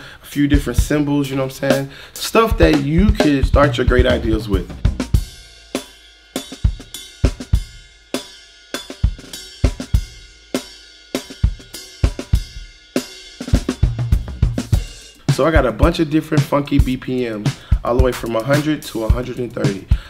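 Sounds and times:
funk drum groove: 0.0 - 20.0.

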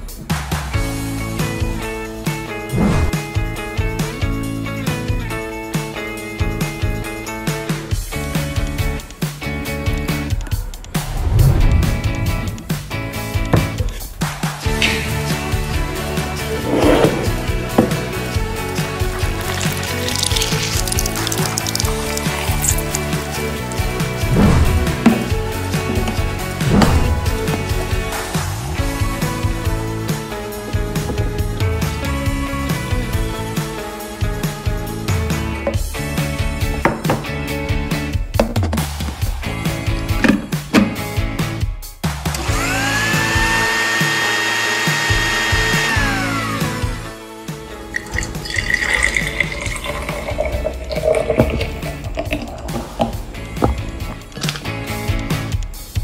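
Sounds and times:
background music with beat: 0.0 - 11.2, 22.9 - 43.9, 45.0 - 56.0
lemon juice squelching: 16.4 - 27.8, 47.8 - 54.8
food blender motor whine: 42.3 - 47.2.

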